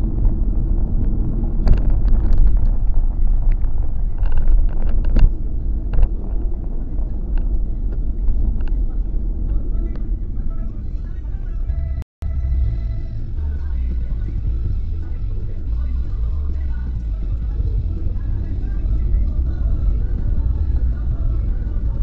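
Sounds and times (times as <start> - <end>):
car cabin road and engine rumble: 0.0 - 22.0.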